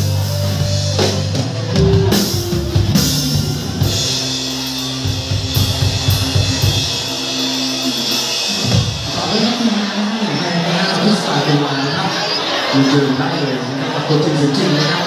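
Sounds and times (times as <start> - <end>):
bass guitar: 0.0 - 9.6
drum kit with cymbals: 0.0 - 9.8
electric guitars: 0.0 - 15.0.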